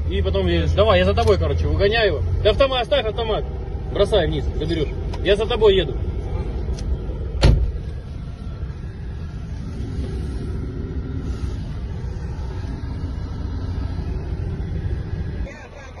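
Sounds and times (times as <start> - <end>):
engine and road rumble in cabin: 0.0 - 16.0
sudden thump: 7.4 - 7.8.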